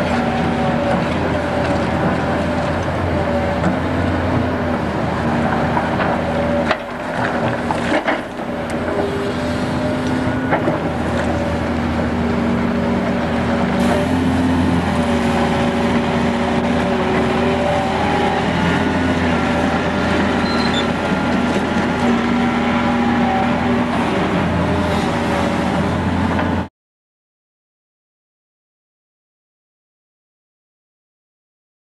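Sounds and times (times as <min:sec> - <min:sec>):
excavator diesel engine running: 0:00.0 - 0:26.7.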